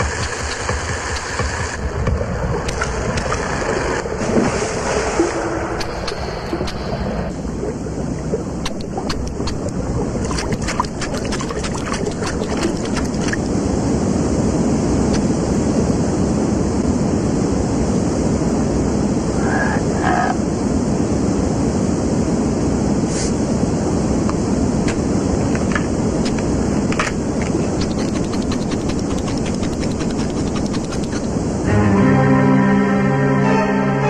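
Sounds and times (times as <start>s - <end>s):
cartoon rushing river water: 0.0s - 15.8s, 23.4s - 31.7s.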